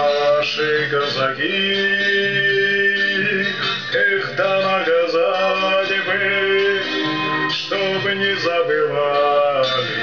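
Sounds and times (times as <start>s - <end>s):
acoustic guitar: 0.0s - 10.0s
man singing slow song: 0.0s - 10.0s.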